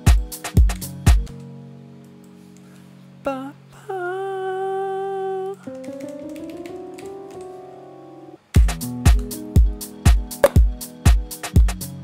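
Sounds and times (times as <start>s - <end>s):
mellow house music: 0.0s - 2.6s, 5.4s - 12.0s
kick drum beat: 0.1s - 1.3s, 8.6s - 11.8s.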